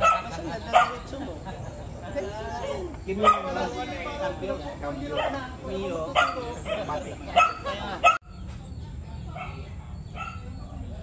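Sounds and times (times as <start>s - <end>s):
dog barking: 0.0s - 1.1s, 3.2s - 3.7s, 5.1s - 8.2s, 9.3s - 10.5s
people talking: 0.0s - 11.0s.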